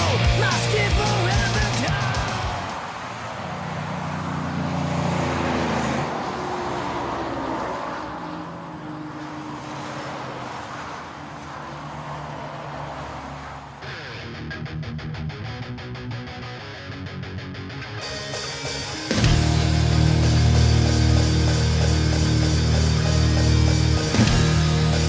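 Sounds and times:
electric guitar: 0:00.0 - 0:02.8, 0:13.8 - 0:25.0
music: 0:00.0 - 0:02.8, 0:13.8 - 0:25.0
car engine hum: 0:00.0 - 0:14.4, 0:19.0 - 0:25.0
outdoor noise: 0:00.0 - 0:25.0.

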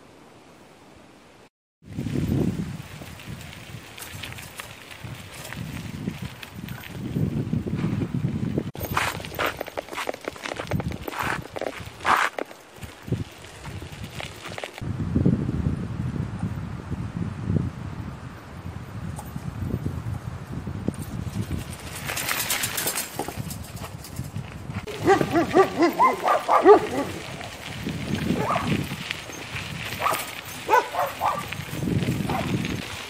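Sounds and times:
footsteps crunching on gravel: 0:02.9 - 0:14.8, 0:21.3 - 0:33.0
dog barking: 0:24.9 - 0:27.2, 0:28.4 - 0:28.7, 0:30.0 - 0:31.5, 0:32.3 - 0:32.5.

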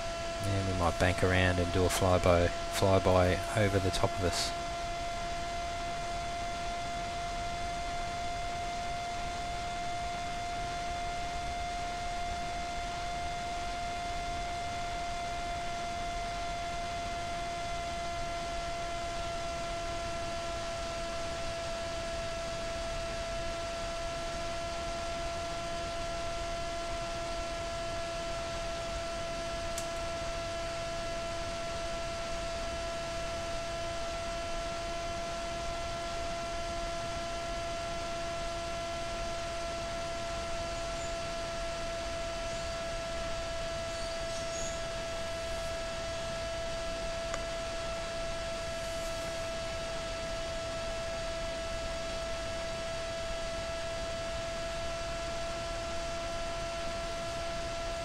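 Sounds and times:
electric motor whine: 0:00.0 - 0:58.0.

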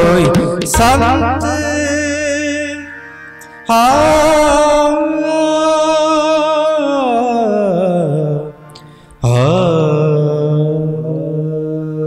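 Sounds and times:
harmonium: 0:00.0 - 0:11.3.

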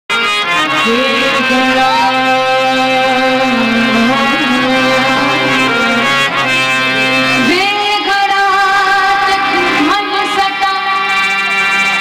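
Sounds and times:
instrumental accompaniment: 0:00.1 - 0:12.0
woman singing into a microphone: 0:00.6 - 0:06.1, 0:07.4 - 0:11.6.

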